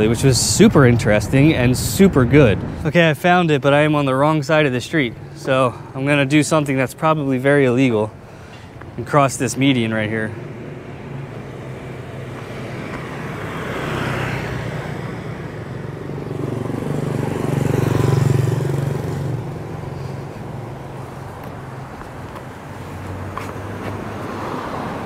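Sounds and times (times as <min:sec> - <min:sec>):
passing vehicles: 0:00.0 - 0:25.0.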